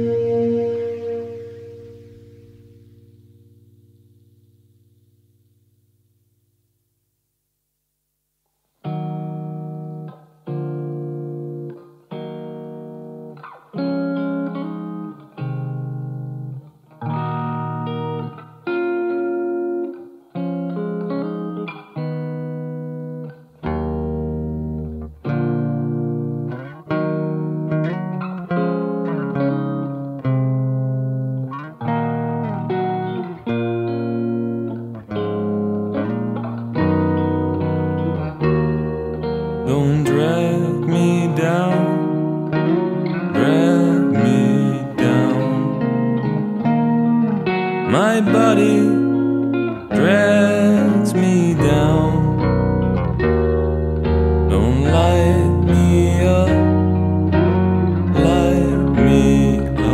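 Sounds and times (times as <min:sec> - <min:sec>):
guitar chords ringing: 0:00.0 - 0:07.3, 0:08.8 - 0:59.9
low bass: 0:51.6 - 0:59.9.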